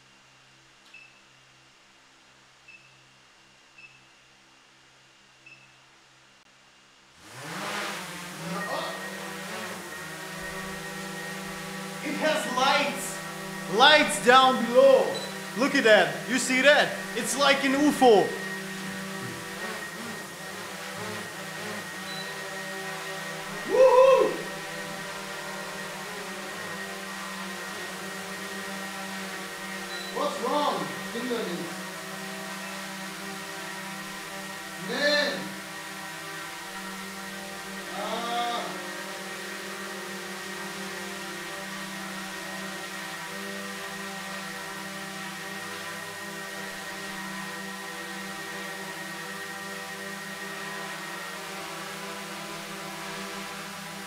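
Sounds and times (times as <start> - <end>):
drone propellers humming: 7.3 - 29.2
voice-like sounds rising and falling: 8.4 - 9.2, 12.0 - 18.6, 23.5 - 24.6.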